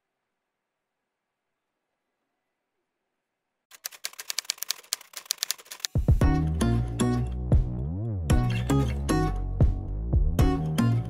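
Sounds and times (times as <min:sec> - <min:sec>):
typewriter key clicks: 0:03.7 - 0:06.0.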